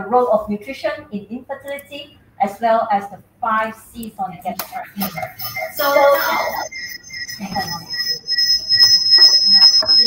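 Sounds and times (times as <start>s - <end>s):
high-pitched electronic whine: 4.8s - 10.0s.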